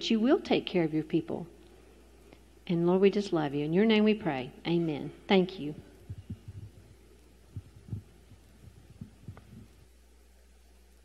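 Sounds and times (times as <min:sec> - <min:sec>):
low rumble: 0:06.0 - 0:09.8
microphone handling thumps and rubs: 0:06.0 - 0:09.9.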